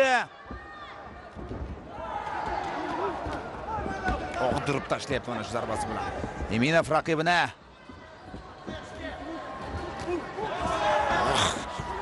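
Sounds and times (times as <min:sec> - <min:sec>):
arena crowd shouting: 0:08.6 - 0:12.0.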